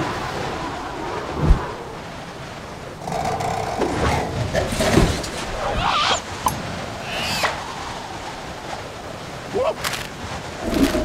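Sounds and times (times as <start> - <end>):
wind noise: 0.0 - 11.0.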